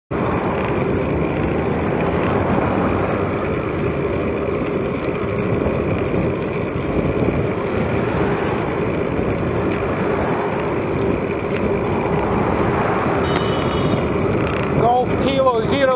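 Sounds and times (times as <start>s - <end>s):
wind and road noise: 0.1s - 15.9s.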